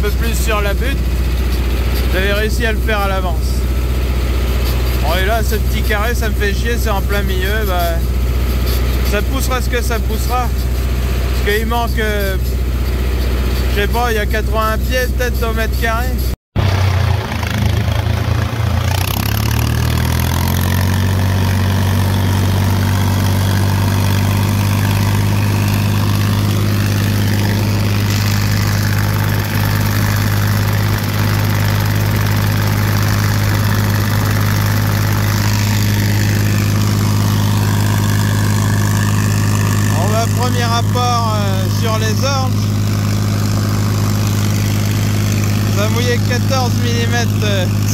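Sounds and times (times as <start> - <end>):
tractor engine running: 0.0 - 47.9.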